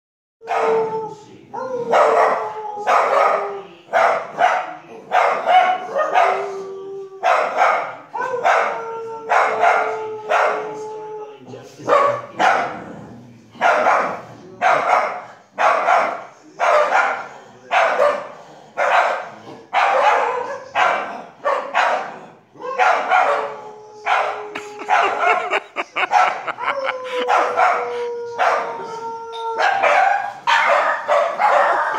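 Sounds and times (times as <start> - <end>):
small dogs barking: 0.4 - 1.0, 1.6 - 6.6, 7.2 - 10.8, 11.8 - 12.9, 13.6 - 29.0, 29.6 - 31.9
dog howling: 0.4 - 3.8, 5.6 - 11.5, 22.6 - 31.9.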